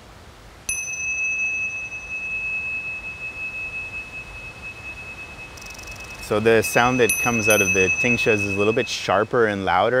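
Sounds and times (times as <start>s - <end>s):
hand cymbals ringing: 0.7s - 9.6s.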